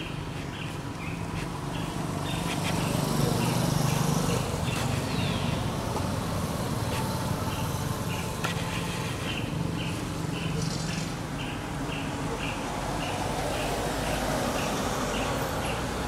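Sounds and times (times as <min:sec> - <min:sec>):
vehicle engine humming: 0:00.0 - 0:16.0.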